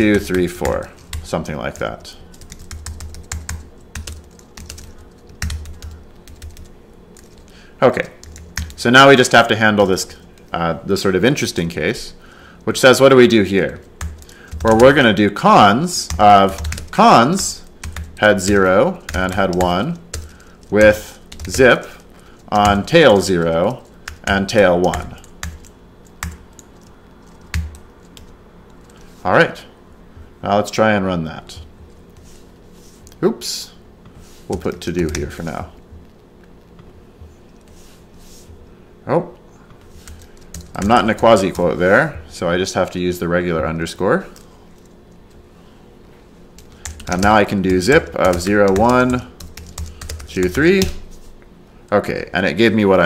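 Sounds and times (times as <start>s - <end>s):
computer keyboard typing: 0.0s - 7.5s, 8.1s - 8.8s, 13.6s - 15.2s, 15.9s - 29.0s, 34.5s - 35.6s, 40.0s - 41.6s, 46.6s - 51.0s.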